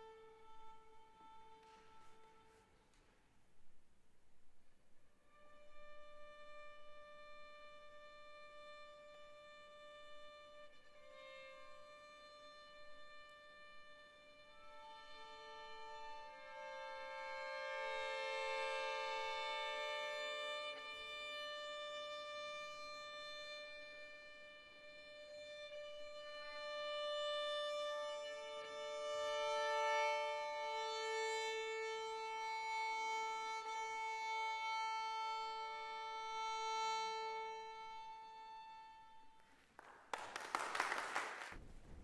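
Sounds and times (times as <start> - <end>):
violins bowing long notes: 0.0 - 2.7, 5.3 - 39.4.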